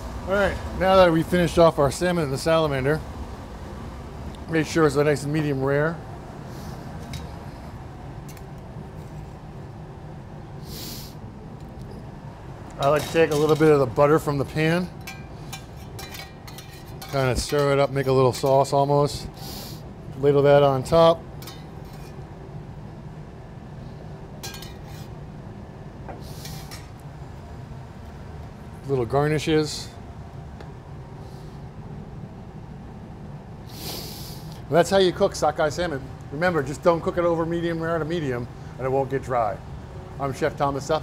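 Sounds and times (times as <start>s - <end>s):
kitchen background hum: 0.0s - 41.0s
kitchen utensils clinking: 12.8s - 13.8s, 24.4s - 25.1s.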